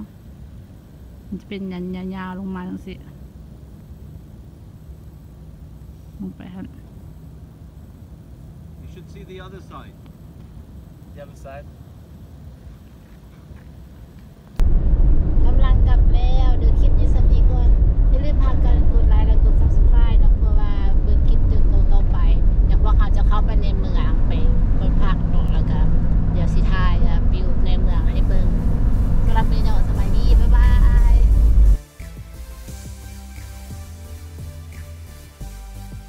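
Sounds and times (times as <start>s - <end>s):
car road noise rumble: 14.0s - 31.8s
voices talking: 15.5s - 31.5s.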